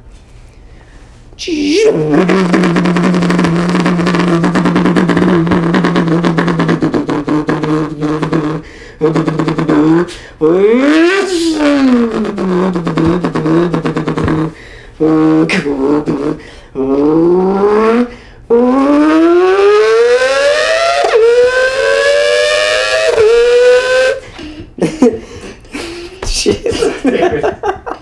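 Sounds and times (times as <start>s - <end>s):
man imitating race car engine: 1.4s - 24.2s
vocal sputtering pops: 1.9s - 24.2s.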